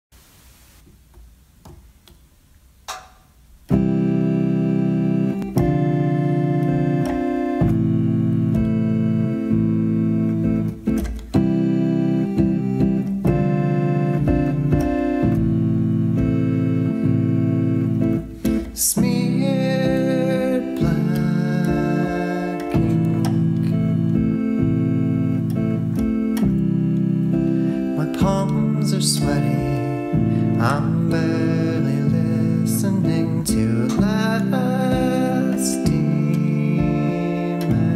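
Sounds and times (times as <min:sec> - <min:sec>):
electric keyboard organ chords: 0:02.8 - 0:37.9.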